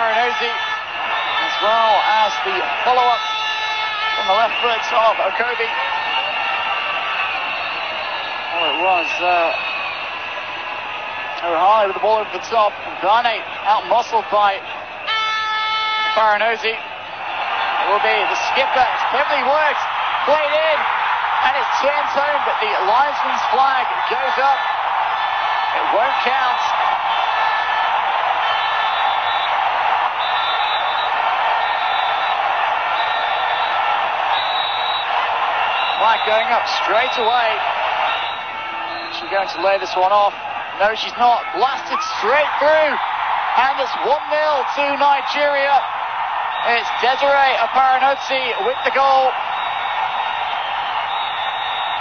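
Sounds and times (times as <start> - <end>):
stadium crowd roar: 0.0 - 52.0.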